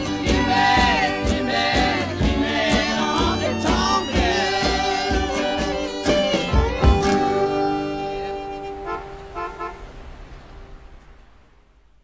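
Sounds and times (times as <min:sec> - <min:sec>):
guitars and fiddle final chord: 0:00.0 - 0:09.7
car horn toots: 0:07.4 - 0:10.1.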